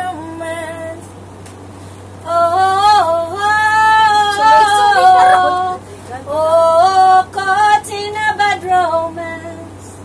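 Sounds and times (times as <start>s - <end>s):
woman singing held notes: 4.3s - 5.8s.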